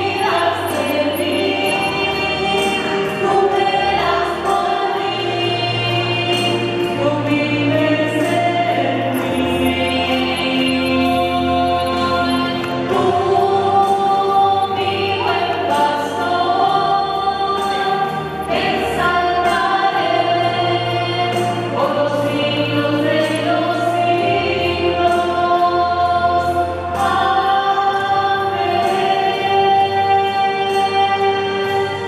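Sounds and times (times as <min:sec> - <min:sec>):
choir singing devotional song: 0:00.0 - 0:32.0.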